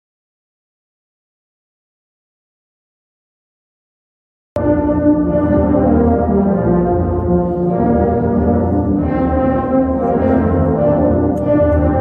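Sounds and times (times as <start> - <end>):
tubas playing low chords: 4.6 - 12.0.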